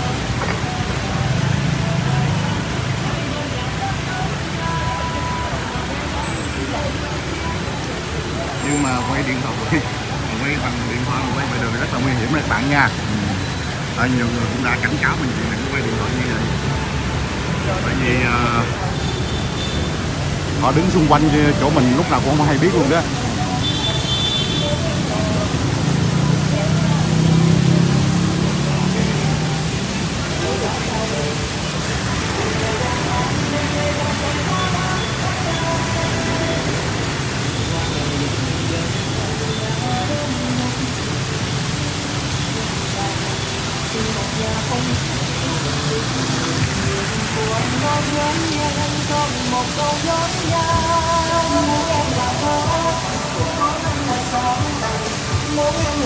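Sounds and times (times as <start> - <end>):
music playing: 0.0 - 19.3, 19.9 - 56.0
fountain water splashing: 0.0 - 56.0.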